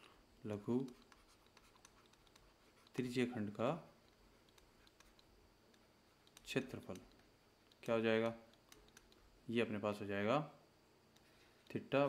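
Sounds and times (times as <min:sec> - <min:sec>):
stylus tapping and scratching on tablet: 0:00.7 - 0:09.3.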